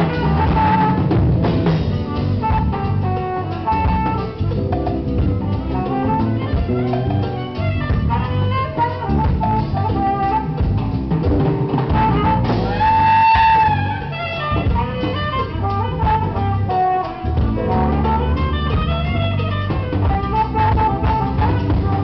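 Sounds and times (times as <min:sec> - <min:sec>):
congas: 0:00.0 - 0:22.0
drum kit: 0:00.0 - 0:22.0
electric guitar: 0:00.0 - 0:22.0
keyboard: 0:00.0 - 0:22.0
saxophone melody: 0:00.0 - 0:22.0.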